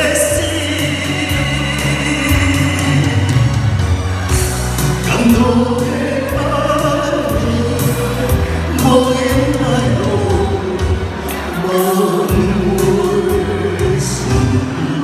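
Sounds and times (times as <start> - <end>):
person singing into microphone: 0.0 - 3.9, 5.0 - 15.0
amplified backing music: 0.0 - 15.0.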